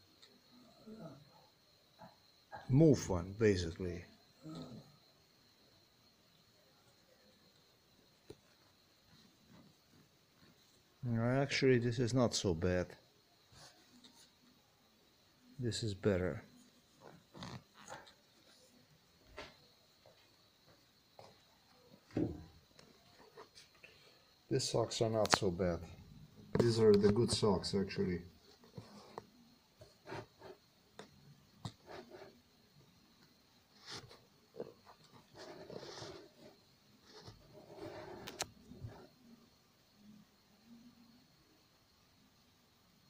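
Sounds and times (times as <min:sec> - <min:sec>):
faint fabric rustles: 0:33.7 - 0:39.2.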